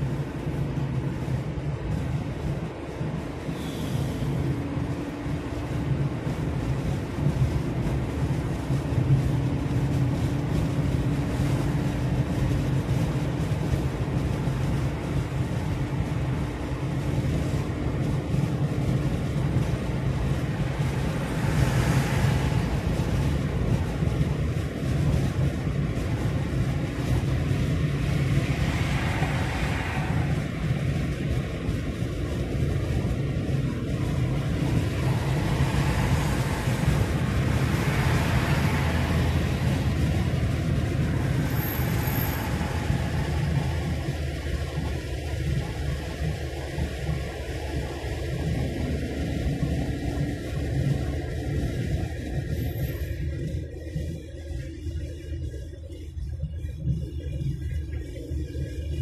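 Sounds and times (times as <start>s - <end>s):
car driving road noise: 0.0s - 59.0s
wind noise: 0.0s - 59.0s.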